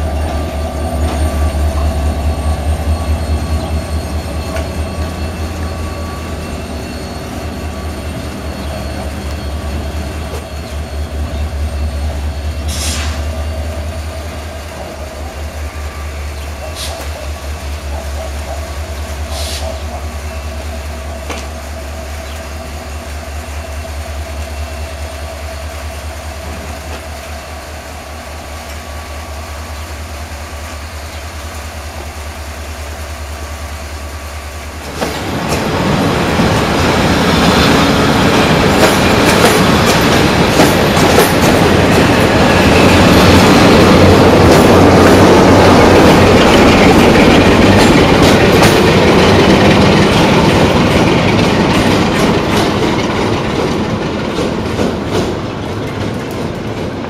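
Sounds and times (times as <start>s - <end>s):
diesel locomotive idling: 0.0s - 57.0s
train wheels clattering over rail joints: 34.8s - 57.0s.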